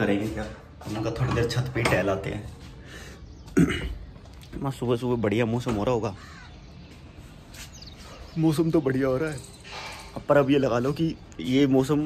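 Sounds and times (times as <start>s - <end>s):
bird calling: 5.8s - 11.5s.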